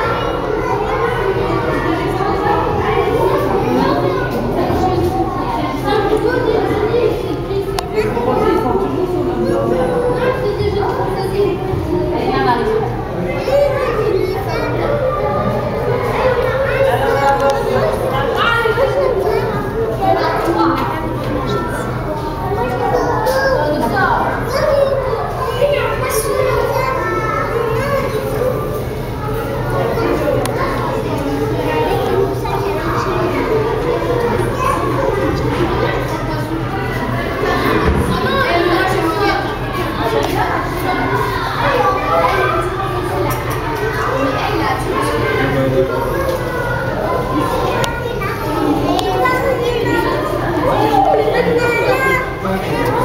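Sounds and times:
children chattering: 0.0s - 53.0s.

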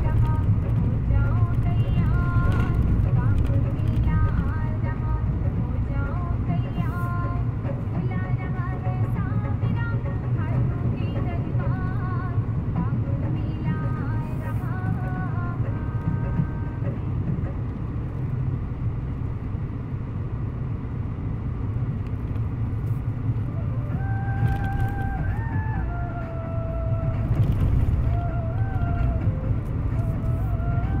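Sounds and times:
music playing: 0.0s - 18.5s, 23.3s - 31.0s
engine and road rumble in car: 0.0s - 31.0s.

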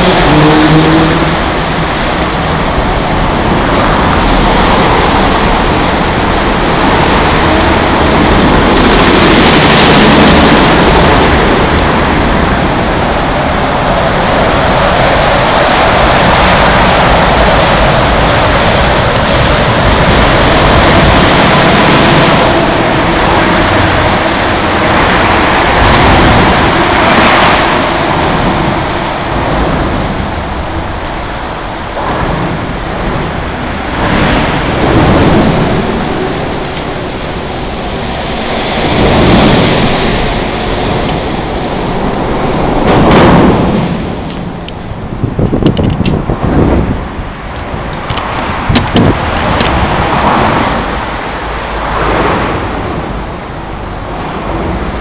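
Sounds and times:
loud road traffic roar: 0.0s - 55.0s.

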